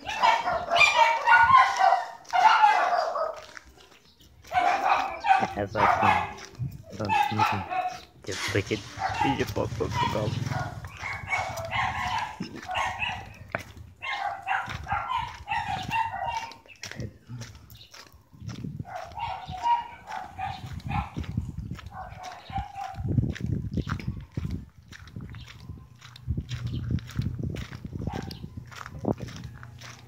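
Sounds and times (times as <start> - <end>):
voices: 4.4 - 17.6
animal calls: 4.5 - 17.5.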